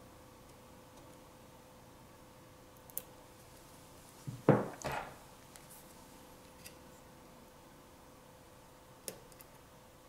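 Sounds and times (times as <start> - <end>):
knocks and rubbing on table: 4.3 - 5.2.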